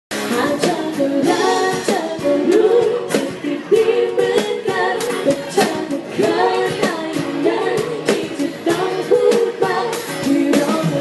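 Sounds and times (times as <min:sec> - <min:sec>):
guitar: 0:00.1 - 0:11.0
person singing: 0:00.2 - 0:11.0.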